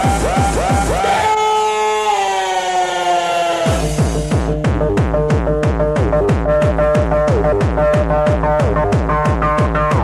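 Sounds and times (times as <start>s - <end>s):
siren-like synthesizer tone: 0.0s - 4.4s
kick drum: 4.0s - 10.0s.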